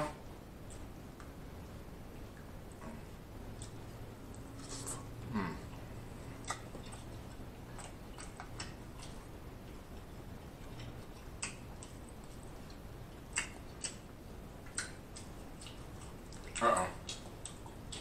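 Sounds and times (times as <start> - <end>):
faint steady hiss: 0.0 - 18.0
wet mouth clicks and lip smacks: 13.2 - 14.0.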